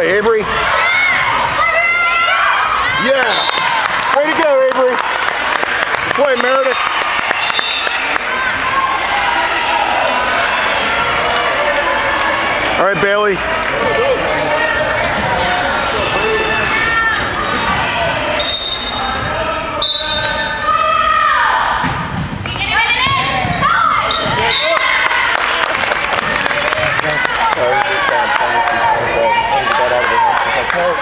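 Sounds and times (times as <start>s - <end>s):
chatter and calls of people: 0.0s - 31.0s
volleyball struck and bouncing: 21.8s - 24.5s.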